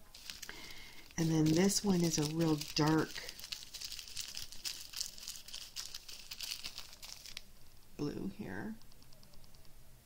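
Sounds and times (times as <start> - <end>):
plastic zip bags crinkling: 0.1 - 7.8.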